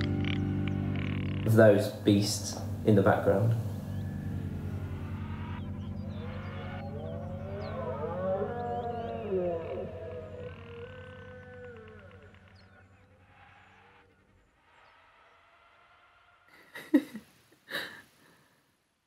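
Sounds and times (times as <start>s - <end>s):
low sustained drone: 0.0s - 16.4s
wailing creature-like calls: 5.4s - 13.6s.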